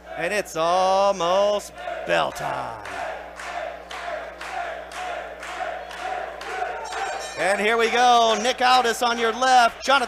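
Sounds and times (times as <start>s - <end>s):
crowd chanting rhythmically: 1.7s - 7.4s.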